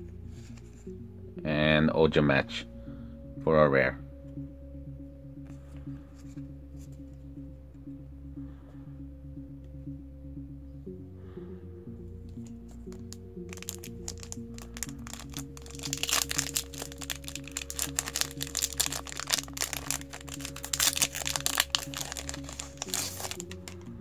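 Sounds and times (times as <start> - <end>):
background music: 0.0 - 24.0
foil wrapper crinkling and tearing: 12.9 - 23.8.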